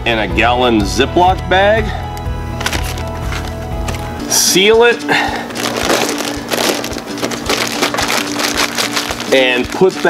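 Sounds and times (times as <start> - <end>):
plastic bag crinkling: 5.5 - 10.0.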